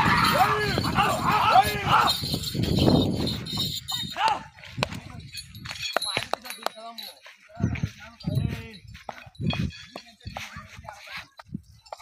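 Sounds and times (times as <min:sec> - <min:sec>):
men calling and shouting: 0:00.0 - 0:12.0.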